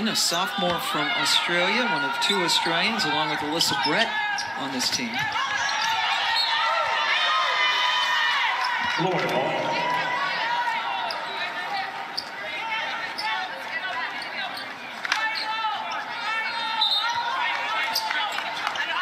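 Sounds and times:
voices of players and crowd: 0.0s - 19.0s
sneakers squeaking on court: 3.6s - 6.6s
basketball bouncing: 8.8s - 10.7s.

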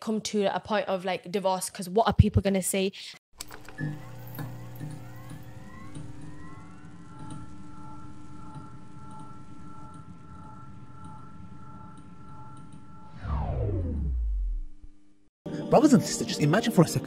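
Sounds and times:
synthesized drone: 3.4s - 15.9s
rising synth sweeps: 5.0s - 15.0s.

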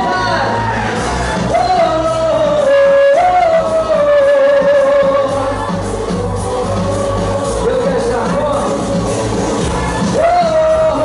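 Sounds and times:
singer holding long note: 0.0s - 7.6s
live pop music: 0.0s - 11.0s.

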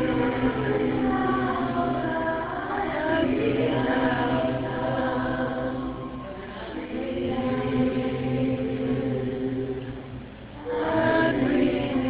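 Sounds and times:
congregation singing a chant: 0.0s - 12.0s.

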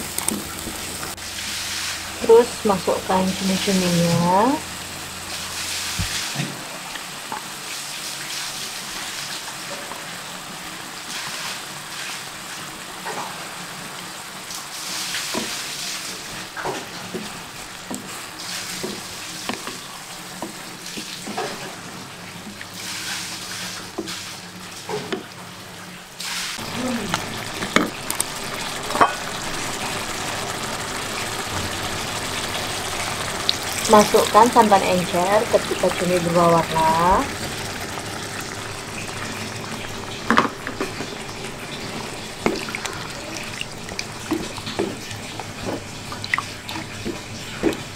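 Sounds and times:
squid sizzling in a wok: 0.0s - 24.9s, 26.2s - 47.9s.

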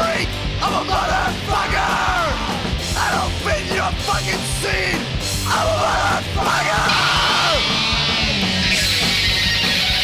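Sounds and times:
person yelling vocals: 0.0s - 7.8s
punk rock band playing: 0.0s - 10.0s.

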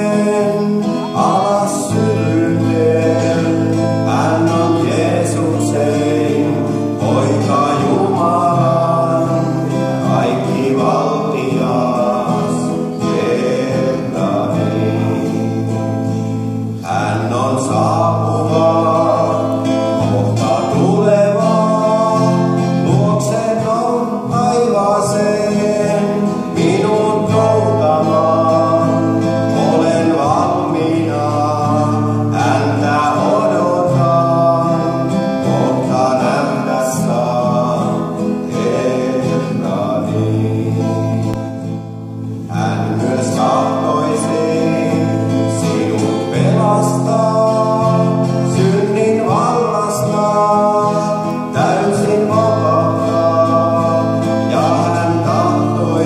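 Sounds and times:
man singing: 0.0s - 56.0s
strummed acoustic guitar: 0.0s - 56.0s.

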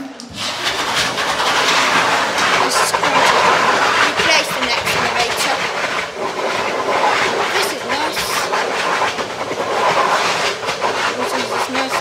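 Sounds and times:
electric hand dryer blowing: 0.0s - 12.0s.

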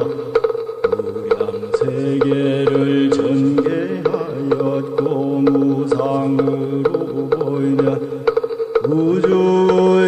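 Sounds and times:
sharp rhythmic clicks: 0.0s - 10.0s
low voice chanting monotone: 0.9s - 8.0s.

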